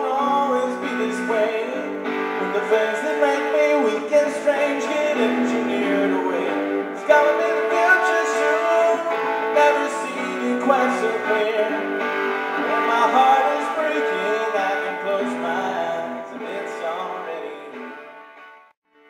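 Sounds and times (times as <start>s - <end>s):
person singing: 0.0s - 18.2s
strummed guitar chords: 0.0s - 18.8s.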